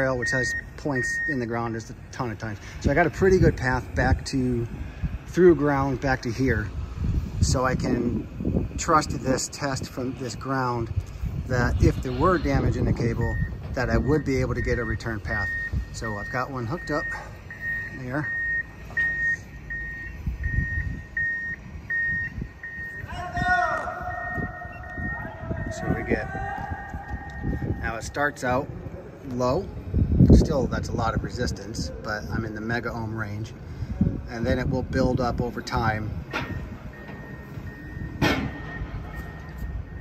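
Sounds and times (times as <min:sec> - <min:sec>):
reversing alarm beeping: 0:00.0 - 0:01.7, 0:11.6 - 0:27.8, 0:35.5 - 0:40.0
construction noise rumble: 0:00.0 - 0:40.0
sharp bang: 0:38.2 - 0:39.0.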